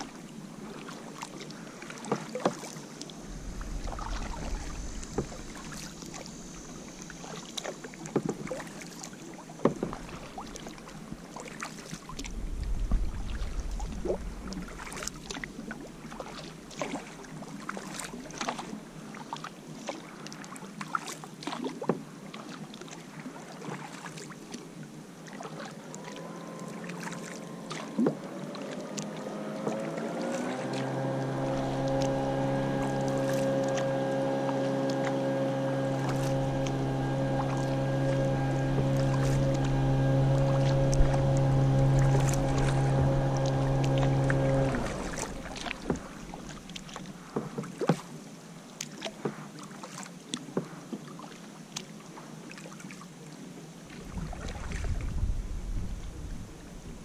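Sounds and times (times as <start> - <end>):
paddle splashing water: 0.0 - 57.0
machine-like drone: 2.8 - 8.1, 12.2 - 16.2, 26.0 - 47.0.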